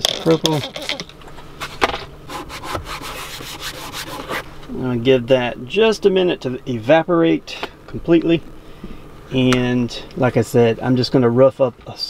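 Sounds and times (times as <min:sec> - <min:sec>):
cloth rubbing on hard plastic: 0:01.6 - 0:04.6.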